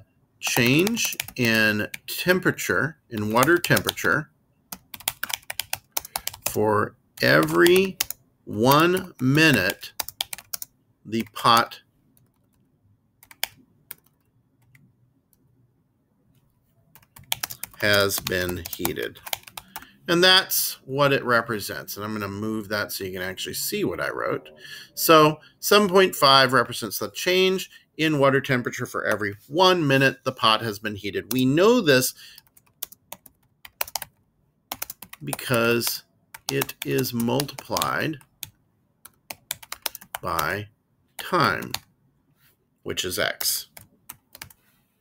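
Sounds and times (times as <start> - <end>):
typing on computer keyboard: 0.5 - 2.0, 3.2 - 4.0, 4.7 - 6.6, 7.2 - 8.2, 8.8 - 12.6, 13.2 - 14.8, 17.0 - 19.9, 32.4 - 35.5, 36.3 - 40.5, 43.7 - 44.6.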